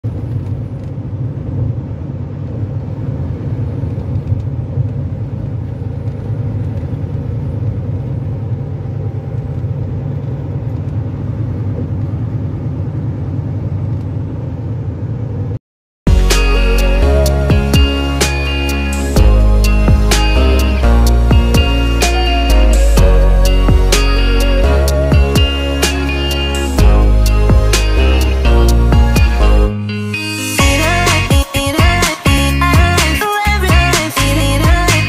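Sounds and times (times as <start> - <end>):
vehicle driving at highway speed: 0.0 - 31.3.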